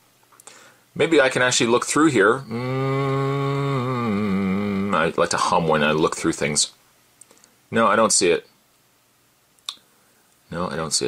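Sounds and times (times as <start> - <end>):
man humming low note: 2.3 - 5.2.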